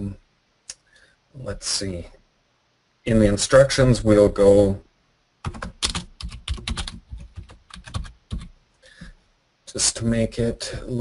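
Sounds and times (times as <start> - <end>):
computer keyboard typing: 5.4 - 8.6.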